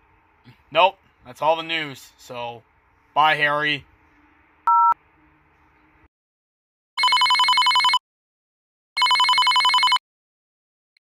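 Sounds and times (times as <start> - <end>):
telephone ringing: 7.0 - 8.0, 9.0 - 10.0.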